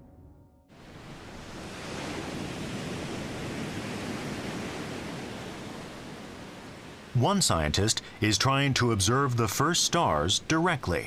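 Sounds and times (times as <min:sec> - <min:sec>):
ocean waves breaking: 0:00.7 - 0:11.0.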